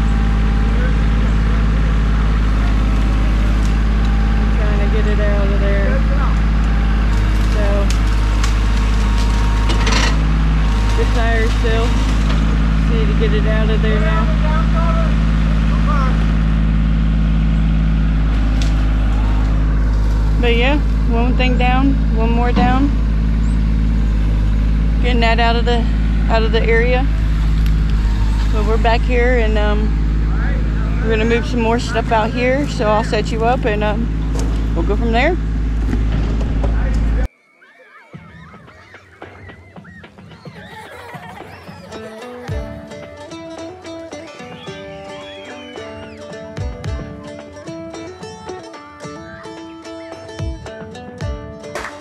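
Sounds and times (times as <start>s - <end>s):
deep bass hits: 0.0s - 37.3s, 46.0s - 49.6s
vehicle engine idling: 0.0s - 37.3s, 39.2s - 51.9s
melody of held notes: 40.9s - 52.0s.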